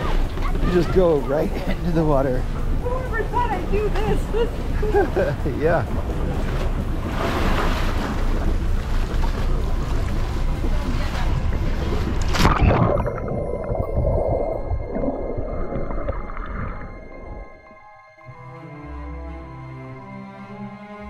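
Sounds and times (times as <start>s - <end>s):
water sloshing and splashing: 0.0s - 17.8s
underwater bubbles gurgling: 6.0s - 17.7s
sharp splash: 6.4s - 13.3s.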